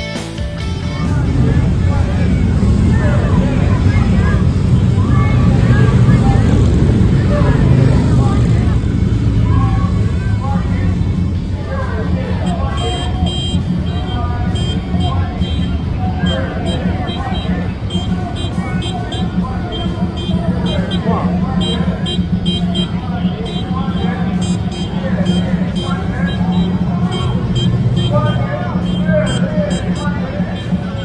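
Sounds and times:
motorcycle engines rumbling: 0:00.0 - 0:31.0
crowd calling out: 0:00.6 - 0:31.0.

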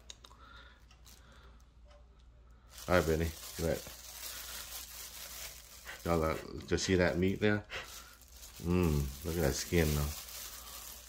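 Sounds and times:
plastic gloves crinkling: 0:00.0 - 0:01.6, 0:02.6 - 0:11.0.

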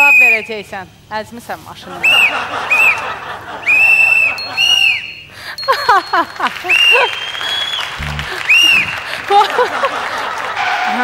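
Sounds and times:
laughter: 0:01.9 - 0:04.8, 0:05.6 - 0:07.2, 0:08.0 - 0:11.0
high squeaky sounds: 0:03.7 - 0:05.4
falling-pitch glides: 0:07.9 - 0:09.1.

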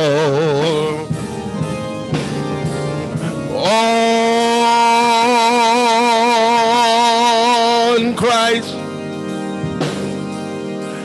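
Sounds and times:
man singing a held note: 0:03.2 - 0:08.8.

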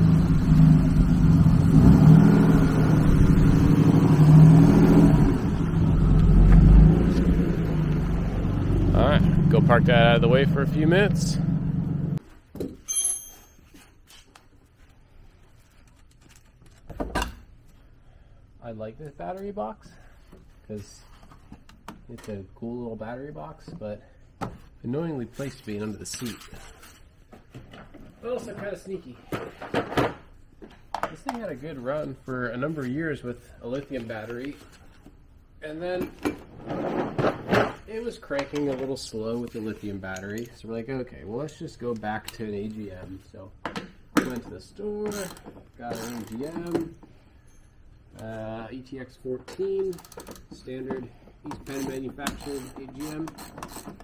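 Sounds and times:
metallic clink with high ring: 0:12.8 - 0:13.7.

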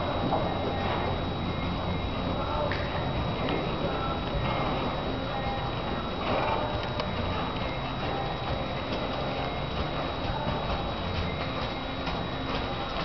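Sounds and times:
faint high whine: 0:00.0 - 0:13.0
horse hoofbeats on soft footing: 0:00.0 - 0:13.0
steady background hiss: 0:00.0 - 0:13.0.

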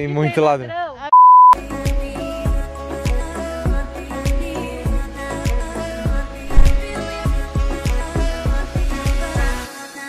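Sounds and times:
censor bleep: 0:01.1 - 0:01.6
background music with steady beat: 0:01.6 - 0:10.0.

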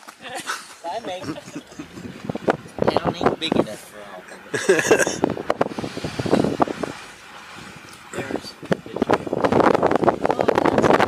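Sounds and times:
car road and engine noise: 0:00.0 - 0:11.0
indistinct voices: 0:01.0 - 0:11.0
wind on microphone: 0:01.2 - 0:11.0.

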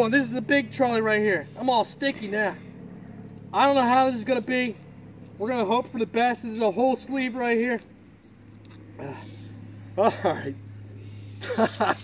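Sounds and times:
crickets chirring: 0:00.0 - 0:12.0
man murmuring: 0:10.0 - 0:10.6.

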